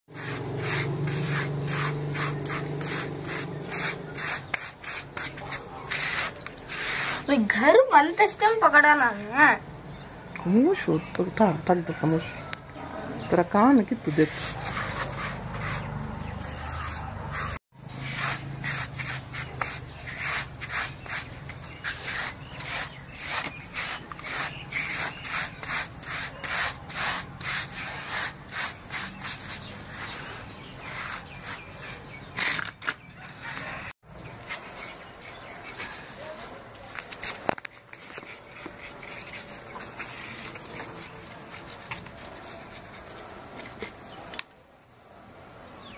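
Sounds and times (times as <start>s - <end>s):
hands sweeping sand on concrete: 0.1s - 8.1s, 14.0s - 32.4s, 33.2s - 44.2s.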